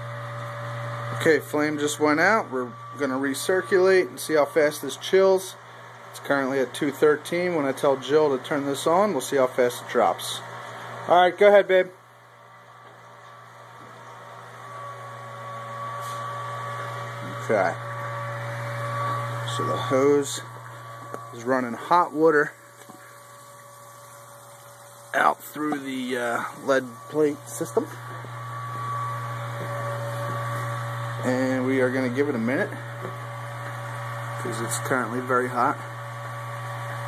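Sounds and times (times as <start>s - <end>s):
pump motor hum: 0.0s - 37.0s
steady pump whine: 0.0s - 37.0s.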